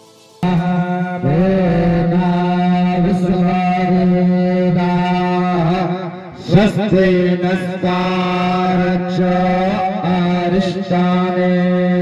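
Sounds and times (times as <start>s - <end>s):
person chanting: 0.4s - 12.0s.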